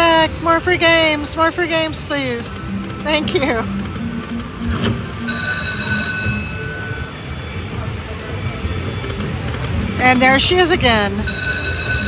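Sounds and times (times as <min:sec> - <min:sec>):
electronic slot machine reel sounds: 0:00.0 - 0:12.0
casino din: 0:04.6 - 0:07.1
held chime tone: 0:05.2 - 0:09.0, 0:11.2 - 0:12.0.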